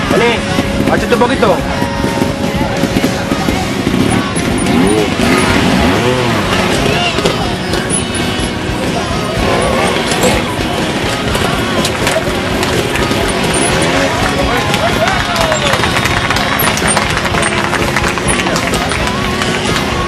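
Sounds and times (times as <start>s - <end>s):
motorcycle engine blipping: 0.0s - 20.0s
spectators' voices: 0.0s - 20.0s.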